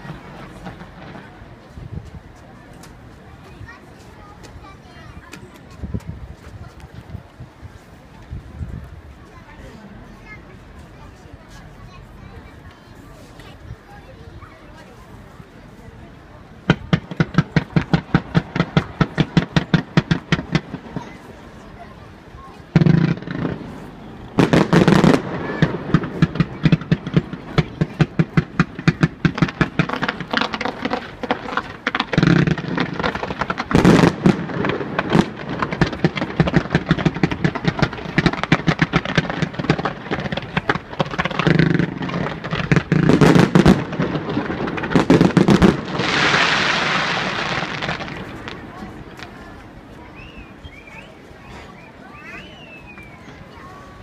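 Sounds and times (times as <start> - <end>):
heavy fireworks booms: 0.0 - 2.6, 16.6 - 50.9
fireworks bangs and crackles: 0.0 - 54.0.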